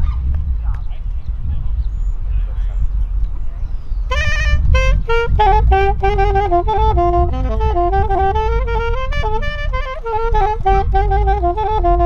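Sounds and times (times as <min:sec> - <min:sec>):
steady low rumble: 0:00.0 - 0:12.0
saxophone notes: 0:04.1 - 0:12.0.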